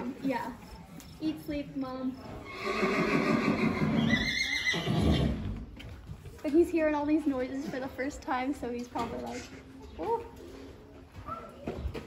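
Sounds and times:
horse whinnying: 2.4 - 5.7.

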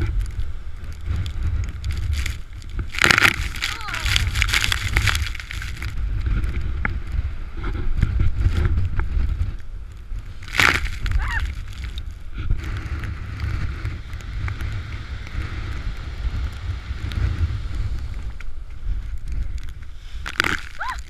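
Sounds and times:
heavy surf breaking: 0.0 - 9.5
wind buffeting microphone: 0.0 - 21.0.

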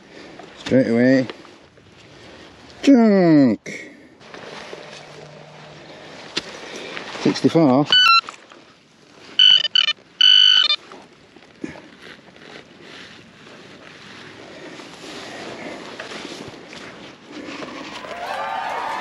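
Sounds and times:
scraping and rustling of soil: 4.2 - 7.8, 10.8 - 18.2
metal detector electronic tones: 7.8 - 8.4, 9.4 - 10.8.

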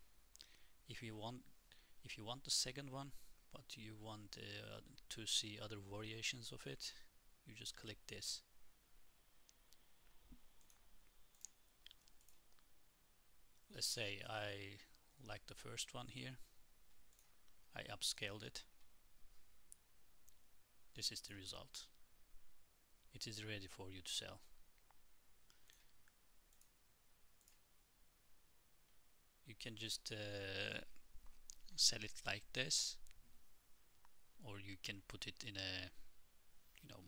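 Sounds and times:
computer mouse clicks: 10.6 - 12.7, 25.6 - 26.8.

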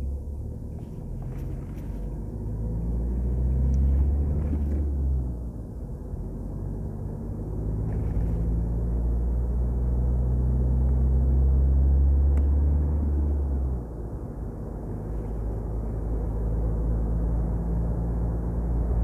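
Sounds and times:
car engine and tyre drone: 0.0 - 19.0.

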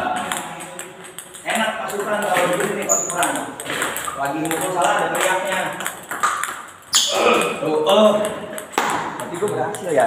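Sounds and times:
ping-pong ball clicking: 0.1 - 10.0
men talking: 1.4 - 6.0, 7.0 - 10.0.

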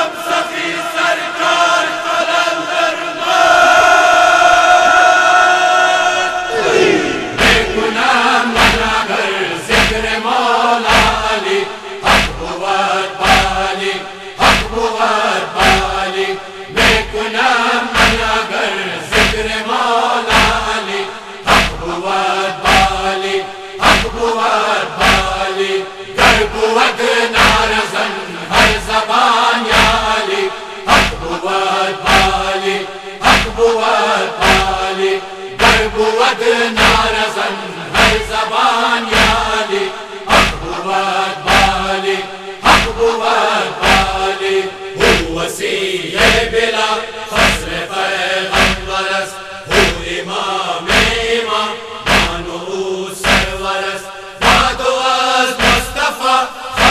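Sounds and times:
men chanting in unison: 0.0 - 56.9
rhythmic chest-beating strikes: 6.5 - 56.9.

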